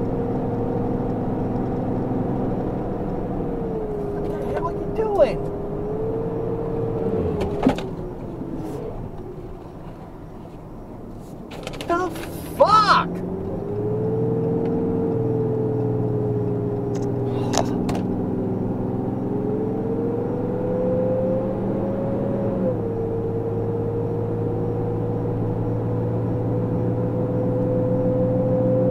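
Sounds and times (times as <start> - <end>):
vehicle engine and road hum: 0.0 - 28.9.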